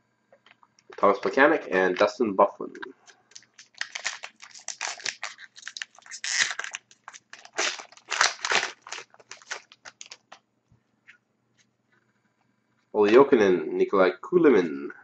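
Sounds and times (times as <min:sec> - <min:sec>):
wrapper tearing and crinkling: 0:03.0 - 0:10.4.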